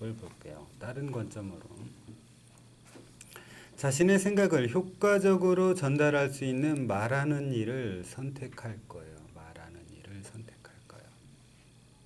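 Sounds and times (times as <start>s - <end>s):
faint low hum: 0.0s - 12.0s
person whispering: 9.7s - 11.2s.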